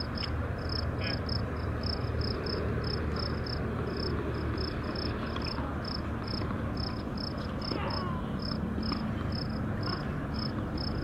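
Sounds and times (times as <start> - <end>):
insect chirping: 0.0 - 5.1
low outdoor rumble: 0.0 - 11.0.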